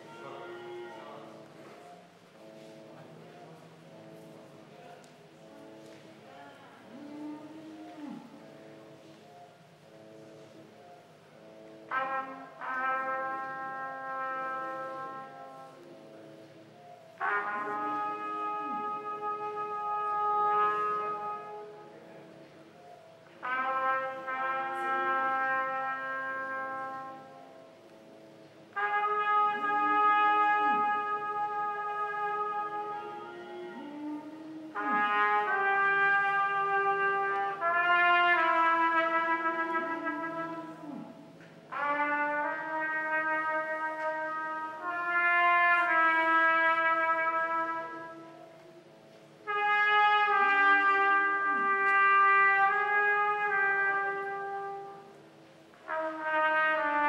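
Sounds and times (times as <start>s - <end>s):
brass-like chords: 0.0s - 57.0s.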